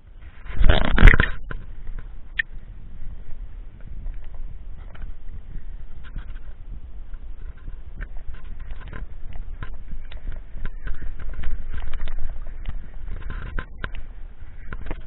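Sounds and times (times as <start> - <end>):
wind buffeting microphone: 0.0 - 15.0
bike clicks and rattles: 3.8 - 15.0.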